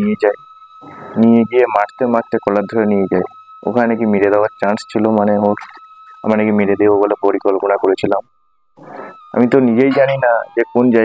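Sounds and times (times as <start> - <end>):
man talking: 0.0 - 0.4, 1.2 - 8.2, 8.9 - 11.0
soft breath: 8.8 - 9.2.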